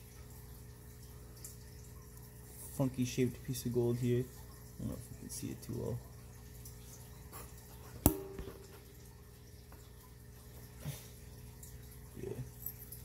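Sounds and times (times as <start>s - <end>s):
steady low hum: 0.1s - 13.0s.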